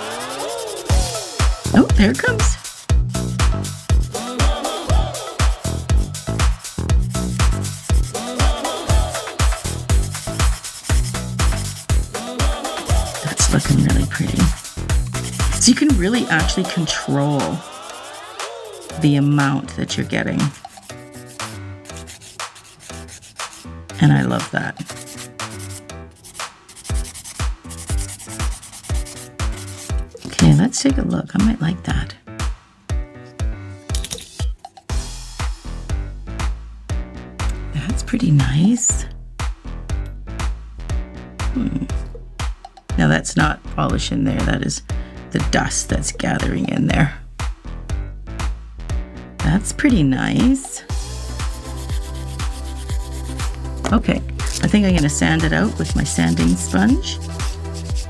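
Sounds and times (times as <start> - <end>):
nail file rasping on nail: 0.0 - 1.0, 10.0 - 11.9, 12.9 - 19.3, 20.0 - 23.7, 24.3 - 30.5, 51.4 - 58.0
music with kick drum beat: 0.7 - 18.5, 26.9 - 31.6, 32.4 - 33.6, 34.4 - 38.6, 39.3 - 43.6, 47.2 - 58.0.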